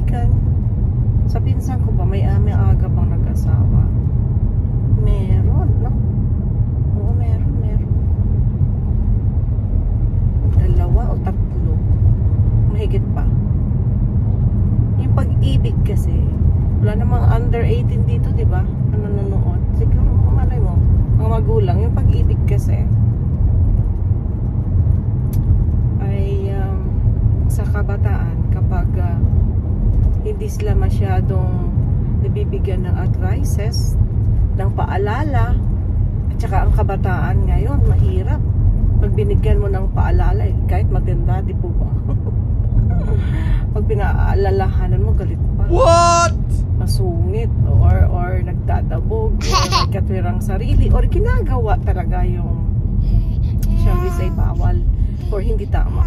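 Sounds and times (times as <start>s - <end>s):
car cabin road rumble: 0.0s - 56.0s.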